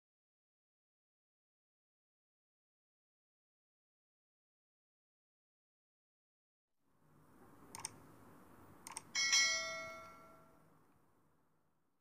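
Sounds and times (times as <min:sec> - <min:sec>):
bell chime: 0:09.2 - 0:10.6.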